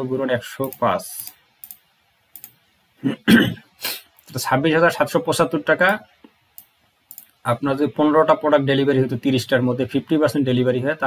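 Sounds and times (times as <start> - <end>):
man speaking: 0.0 - 1.4, 4.3 - 6.2, 7.4 - 11.0
man clearing throat: 3.0 - 3.7.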